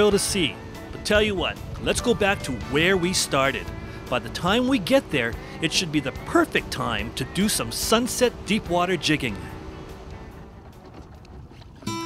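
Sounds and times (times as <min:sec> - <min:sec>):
boat rushing through water: 0:00.0 - 0:12.0
faint background music: 0:00.0 - 0:12.0
acoustic guitar music: 0:08.0 - 0:12.0.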